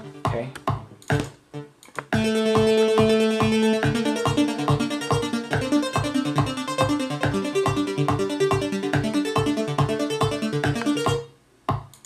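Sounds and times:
synthesizer arpeggio: 0:00.0 - 0:00.5, 0:01.1 - 0:11.2
held synth chord: 0:01.5 - 0:11.2.

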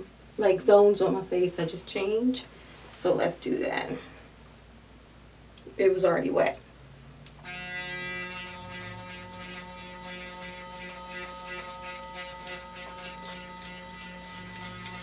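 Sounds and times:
facial cleansing brush humming: 0:07.4 - 0:15.0.

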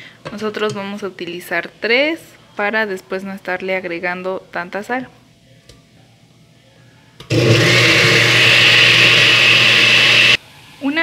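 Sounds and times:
blender motor grinding: 0:07.3 - 0:10.4.

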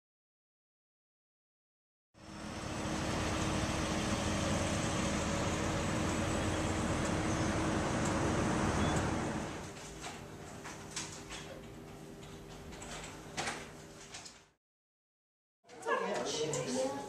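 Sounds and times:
outdoor background noise: 0:02.2 - 0:14.2.

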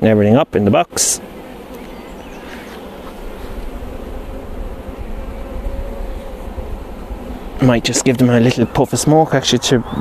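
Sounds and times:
honeybees humming: 0:00.0 - 0:10.0.

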